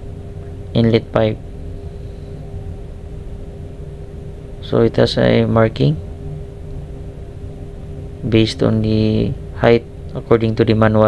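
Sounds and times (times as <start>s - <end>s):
engine room machinery drone: 0.0s - 11.0s.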